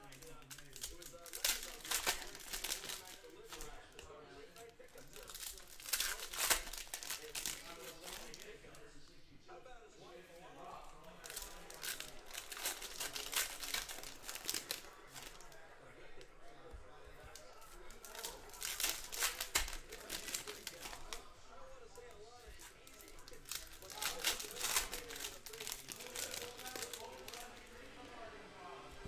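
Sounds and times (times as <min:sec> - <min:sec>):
foil wrappers tearing and crinkling: 0:00.0 - 0:08.6, 0:11.1 - 0:15.6, 0:17.2 - 0:21.2, 0:22.0 - 0:27.7.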